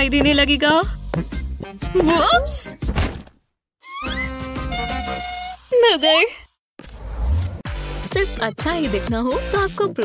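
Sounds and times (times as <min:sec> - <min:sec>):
music: 0:00.0 - 0:03.0, 0:03.8 - 0:06.0, 0:07.6 - 0:10.0
sharp knocks and thuds: 0:02.8 - 0:03.4
rising swoop: 0:06.8 - 0:07.7.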